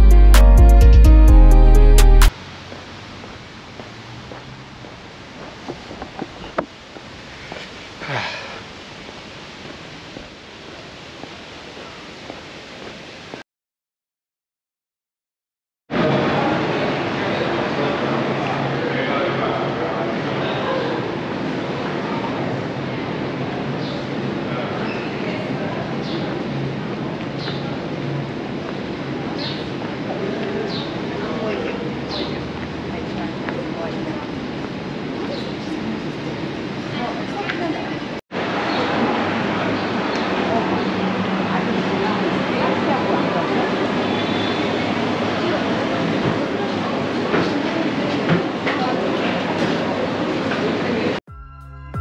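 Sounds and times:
traffic hum: 2.2 - 13.1, 16.0 - 51.2
faint voices of passers-by: 7.3 - 8.7, 15.9 - 51.2
breathy sniff: 7.3 - 8.8.

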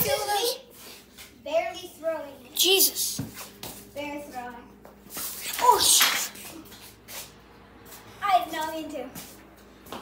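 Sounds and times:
children talking: 0.0 - 0.7, 5.4 - 6.8
child shouting: 5.6 - 6.2.

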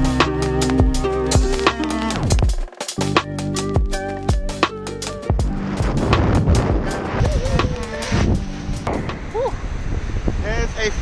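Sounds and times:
background music: 0.0 - 8.9
water rushing under kiteboard: 5.4 - 11.0
wind rushing over microphone: 5.4 - 11.0.

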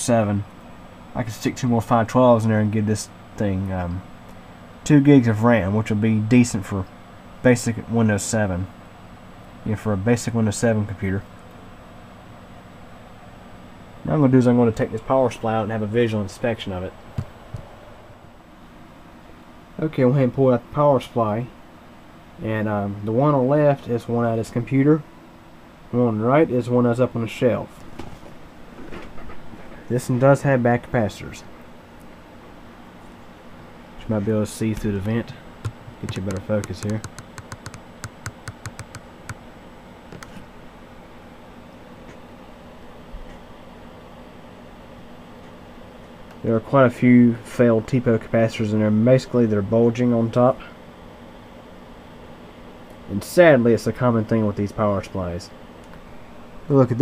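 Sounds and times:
low room hum: 0.0 - 57.0
light clicks and taps: 34.7 - 39.4.

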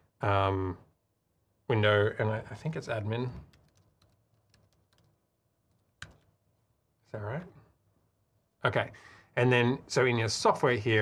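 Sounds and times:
faint computer keyboard keystrokes: 3.4 - 6.4.

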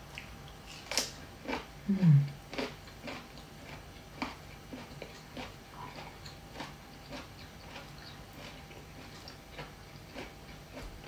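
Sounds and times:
person chewing food: 0.0 - 11.0.

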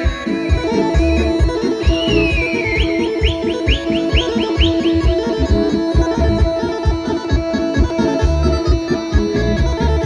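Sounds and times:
accordion dance music: 0.0 - 10.0.

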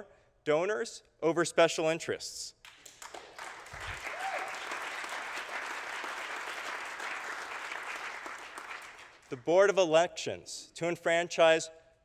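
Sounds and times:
audience applauding: 2.7 - 9.3.

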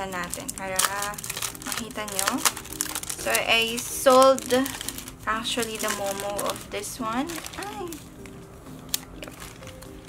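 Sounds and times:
plastic wrapping crinkling: 0.0 - 10.0
person speaking: 3.2 - 8.2.

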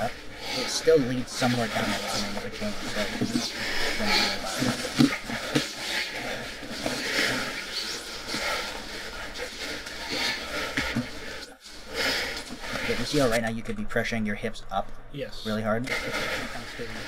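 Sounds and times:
indistinct low voices: 0.0 - 17.0
steady hiss: 0.0 - 17.0.

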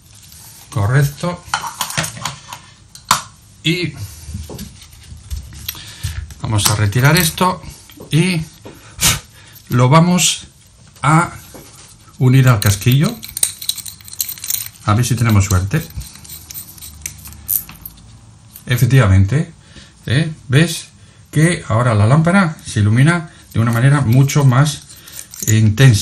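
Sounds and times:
bulb threads scraping and clicking: 12.6 - 18.1.

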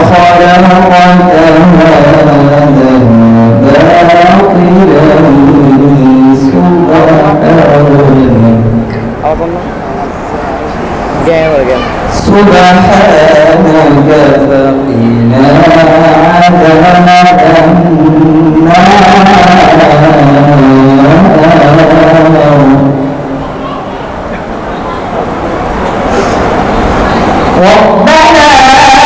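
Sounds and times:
man chanting into a microphone: 0.0 - 9.6, 11.3 - 23.4, 27.5 - 29.0
male voice reciting melodically: 0.0 - 25.0, 27.5 - 29.0.

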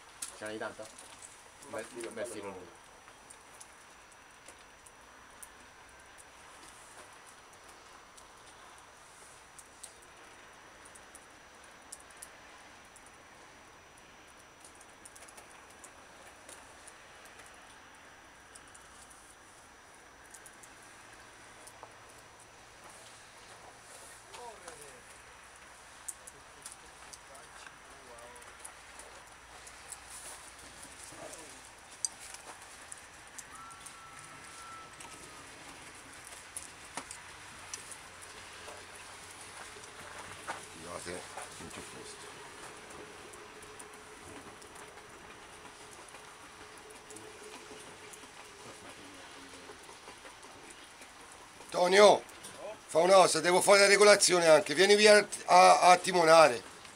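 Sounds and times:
low background hiss: 0.0 - 56.9
distant voices: 14.3 - 56.9
whistle-like tone: 33.4 - 35.6.

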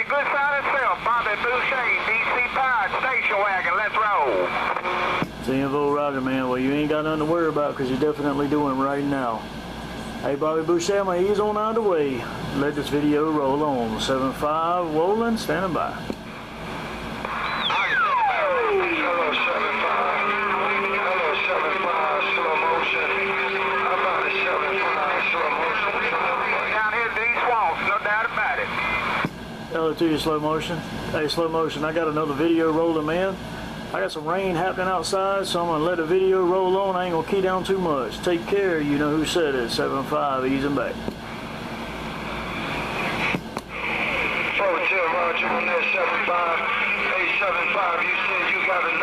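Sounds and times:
garbled radio voices: 0.0 - 5.2, 17.2 - 29.3, 42.8 - 49.0
low radio tone: 0.0 - 9.3, 16.9 - 29.9, 42.0 - 49.0
radio static: 0.0 - 9.3, 12.6 - 33.3, 40.0 - 49.0
radio click: 4.5 - 5.4, 17.2 - 17.6.

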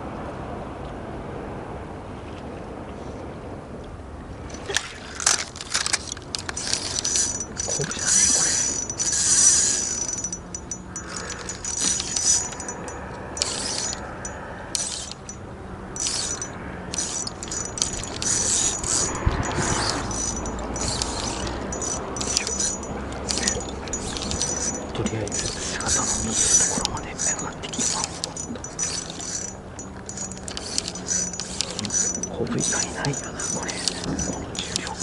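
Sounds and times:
fishing reel whirring and ticking: 4.5 - 35.0.

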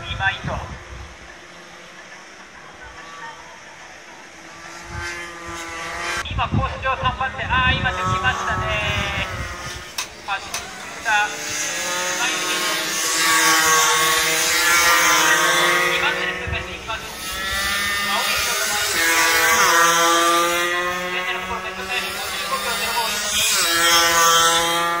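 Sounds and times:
racing motorcycle engines revving: 0.0 - 25.0.

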